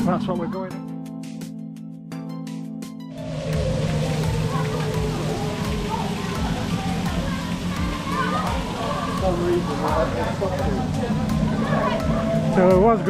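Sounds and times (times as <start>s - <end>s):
music playing: 0.0s - 13.0s
waterfall splashing over rocks: 3.2s - 13.0s.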